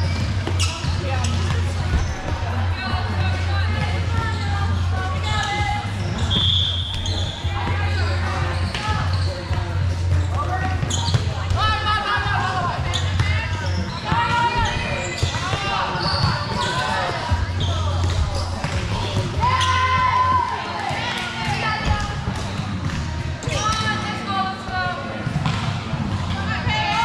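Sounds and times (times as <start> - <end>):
girls calling and shouting: 19.4 - 22.3.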